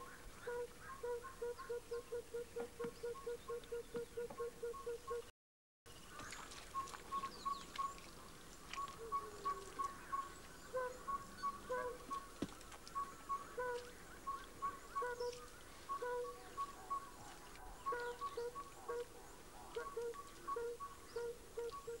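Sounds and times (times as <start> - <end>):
birds calling repeated notes: 0.0 - 5.3, 6.0 - 22.0.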